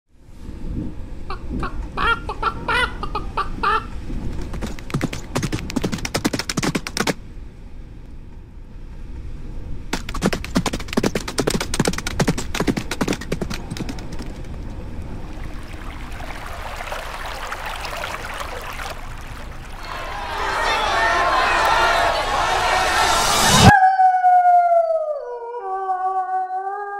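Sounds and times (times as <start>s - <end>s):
wolf-like howl: 23.6s - 26.9s.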